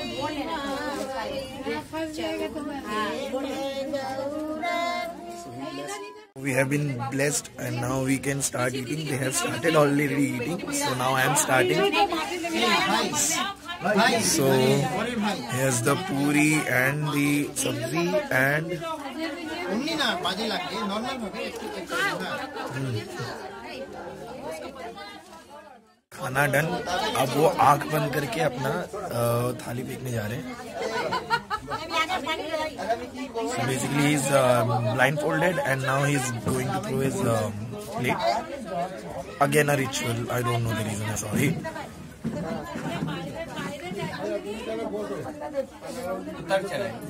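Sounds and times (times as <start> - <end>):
people talking over one another: 0.0 - 47.0.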